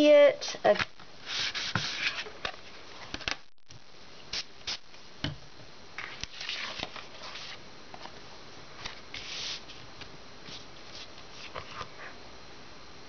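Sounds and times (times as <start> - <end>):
paper and foam rustling: 6.0 - 8.2.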